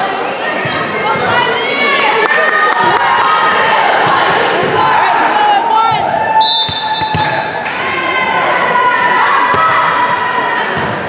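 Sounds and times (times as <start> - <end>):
voices in gymnasium: 0.0 - 11.0
sneaker squeaks: 0.3 - 1.2.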